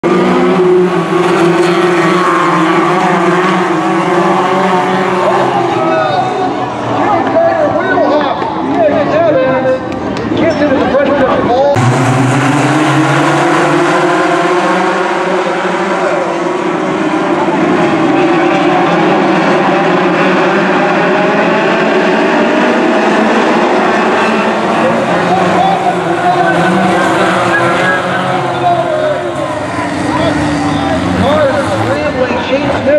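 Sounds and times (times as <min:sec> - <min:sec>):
race car engines revving: 0:00.0 - 0:32.9.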